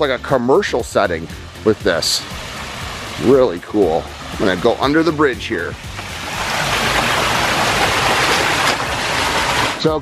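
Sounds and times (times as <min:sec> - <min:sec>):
water cascading over rocks: 0:00.0 - 0:10.0.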